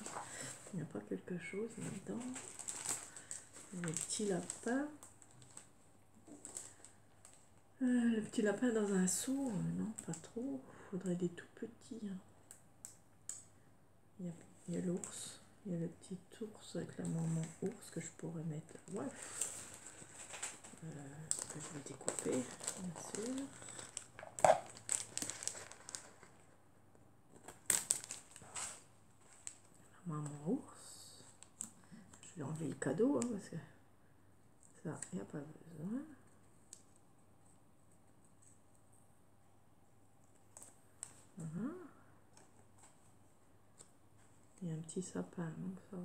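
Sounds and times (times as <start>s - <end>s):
sticker paper rustling: 18.9s - 26.4s.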